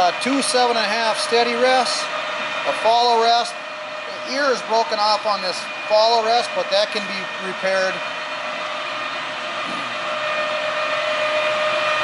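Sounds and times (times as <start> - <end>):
machinery whirring and whining: 0.0 - 12.0.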